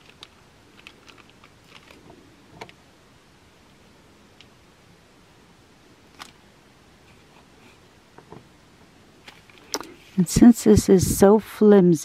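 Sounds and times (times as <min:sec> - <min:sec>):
hands handling craft pieces: 0:00.0 - 0:02.8.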